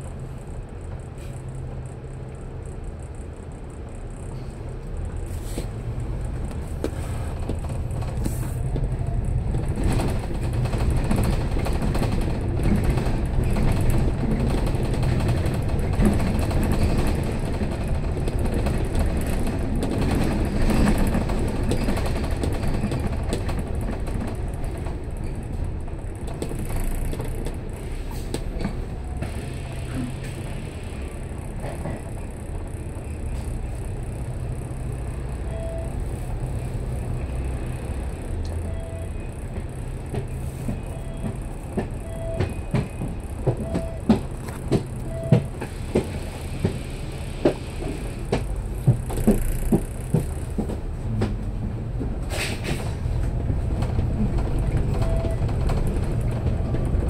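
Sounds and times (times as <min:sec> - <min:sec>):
bus engine running: 0:00.0 - 0:57.0
road rumble: 0:00.0 - 0:57.0.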